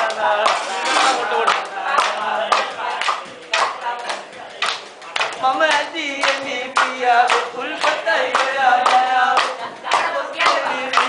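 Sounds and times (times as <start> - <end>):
group clapping in rhythm: 0.0 - 11.0
men chanting: 0.0 - 11.0.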